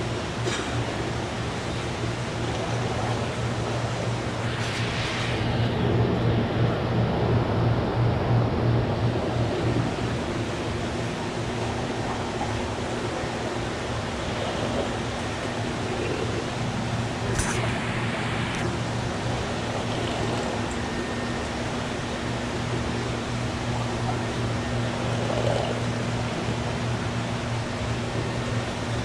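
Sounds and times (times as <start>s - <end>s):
air pumps and filters humming: 0.0s - 29.0s
click and hiss: 17.2s - 18.7s.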